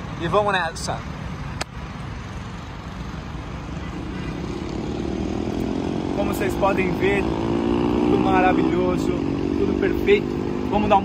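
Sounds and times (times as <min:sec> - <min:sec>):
road traffic rumble: 0:00.0 - 0:11.0
vehicle engine accelerating: 0:03.6 - 0:11.0.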